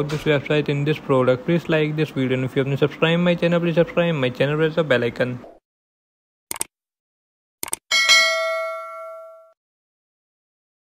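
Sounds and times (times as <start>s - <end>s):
notification bell ding: 7.9s - 9.6s.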